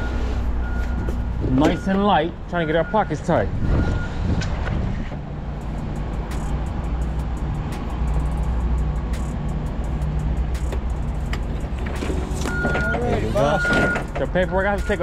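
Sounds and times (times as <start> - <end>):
forklift engine rumbling: 0.0 - 15.0.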